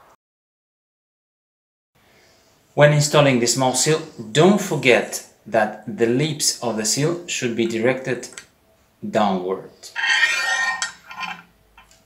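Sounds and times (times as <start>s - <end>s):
metal rod clinking and scraping: 9.9s - 11.5s.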